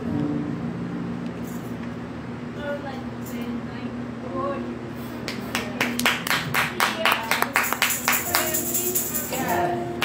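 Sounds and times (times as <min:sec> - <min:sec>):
low steady hum: 0:00.0 - 0:10.0
rhythmic hand clapping: 0:05.2 - 0:10.0.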